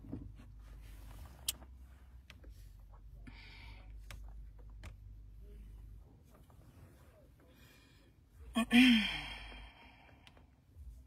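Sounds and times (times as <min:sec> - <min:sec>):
woman sighing: 0:08.5 - 0:10.2.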